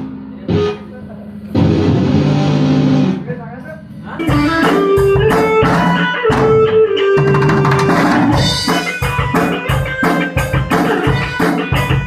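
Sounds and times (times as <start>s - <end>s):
distorted electric guitar chord: 0.0s - 12.0s.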